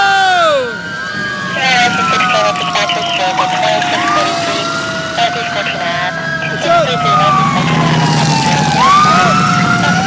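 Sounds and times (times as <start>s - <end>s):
police siren wailing: 0.0s - 10.0s.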